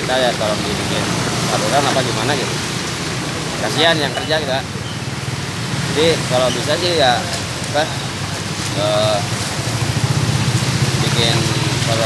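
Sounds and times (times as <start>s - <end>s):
motorcycle passing: 0.0s - 12.0s
steady outdoor hiss: 0.0s - 12.0s.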